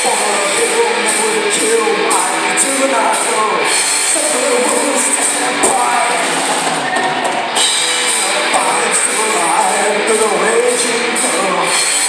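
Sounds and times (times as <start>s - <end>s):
cymbals keeping a beat: 0.0s - 12.0s
rock band playing: 0.0s - 12.0s.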